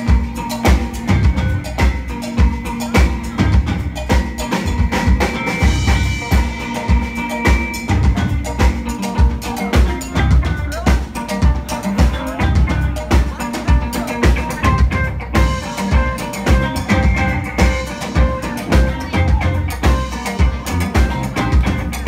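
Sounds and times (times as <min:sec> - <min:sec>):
drum kit beat: 0:00.0 - 0:22.0
electric guitars: 0:00.0 - 0:22.0.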